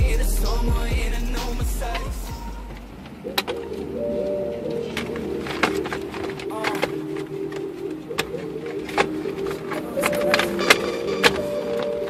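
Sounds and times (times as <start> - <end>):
bass-heavy music: 0.0 - 2.9.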